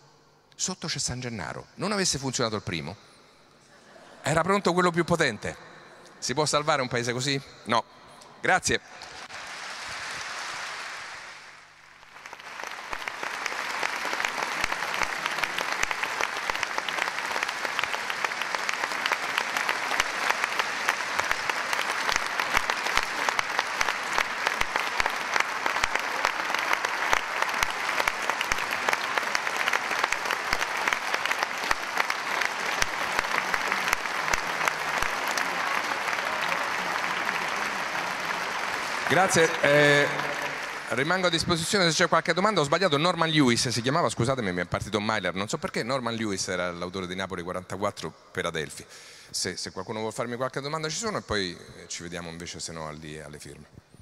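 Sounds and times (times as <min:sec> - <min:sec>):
large audience applauding: 0:08.9 - 0:43.8.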